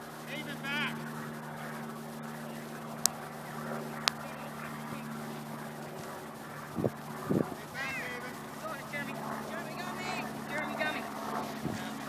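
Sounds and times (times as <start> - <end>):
distant shouts and calls: 0.0 - 12.0
steady low hum: 0.0 - 12.0.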